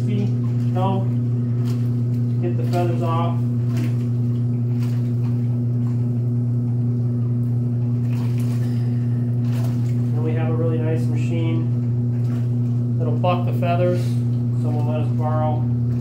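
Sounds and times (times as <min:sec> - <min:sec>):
electric motor humming: 0:00.0 - 0:16.0
person speaking: 0:02.4 - 0:03.5, 0:10.1 - 0:11.8, 0:13.0 - 0:15.8.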